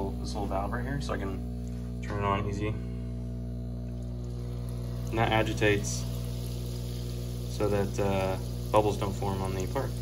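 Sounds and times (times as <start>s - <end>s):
steady low hum: 0.0s - 10.0s
air bubbling in liquid: 3.4s - 10.0s.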